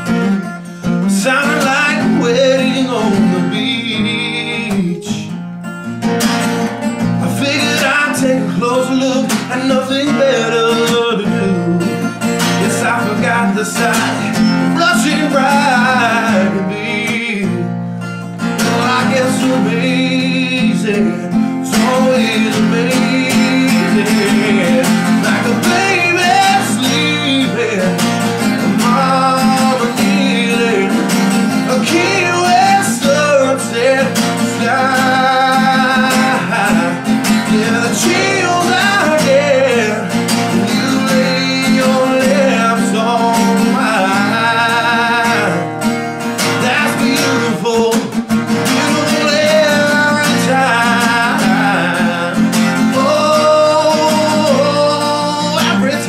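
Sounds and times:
man singing with vibrato: 0:00.0 - 0:05.6, 0:06.8 - 0:56.0
acoustic guitar strumming: 0:00.0 - 0:56.0.

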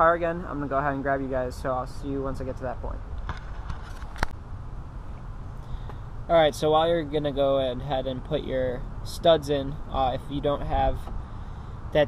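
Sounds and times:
outdoor background rumble: 0:00.0 - 0:12.0.

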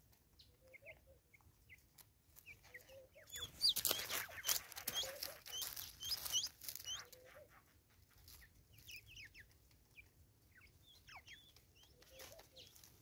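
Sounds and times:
small birds chirping: 0:00.0 - 0:13.0.

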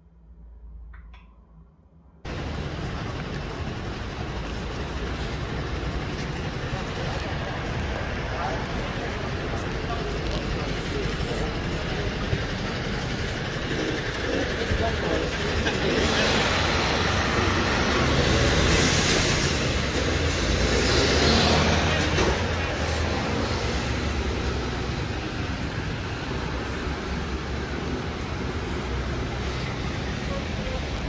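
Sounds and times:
road traffic rumble: 0:02.2 - 0:31.0
people's voices: 0:02.3 - 0:31.0.

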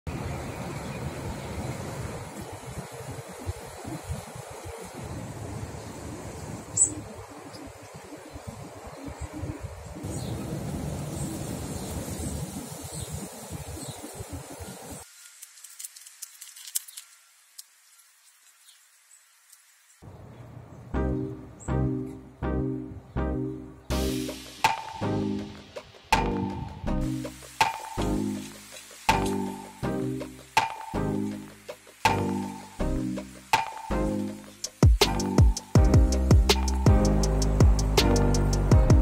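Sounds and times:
faint ticks: 0:15.2 - 0:18.8
steady low rumble: 0:35.4 - 0:39.0.

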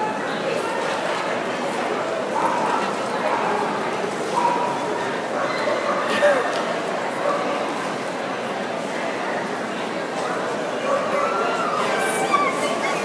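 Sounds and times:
indistinct crowd chatter: 0:00.0 - 0:13.0.

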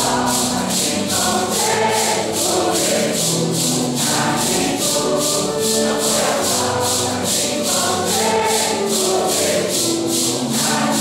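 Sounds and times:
congregation singing a hymn: 0:00.0 - 0:11.0
maracas shaken: 0:00.0 - 0:11.0.

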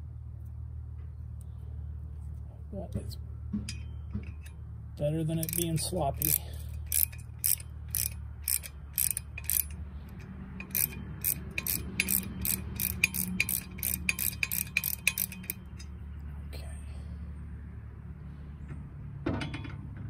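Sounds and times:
ratcheting wrench clicking: 0:05.3 - 0:15.9.

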